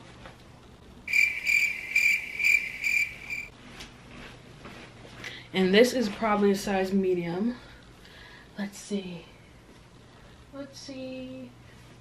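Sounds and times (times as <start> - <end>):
high-pitched pulsing chirp: 1.1 - 3.5.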